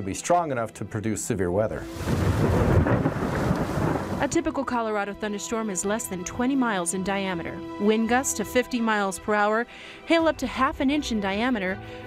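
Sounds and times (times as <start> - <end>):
thunder rumbling: 1.9 - 4.6.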